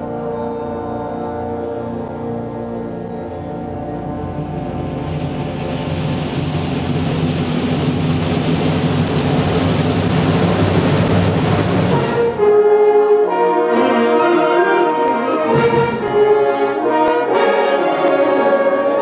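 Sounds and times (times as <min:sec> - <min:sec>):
concert band playing: 0:00.0 - 0:19.0
brass chords: 0:10.1 - 0:19.0.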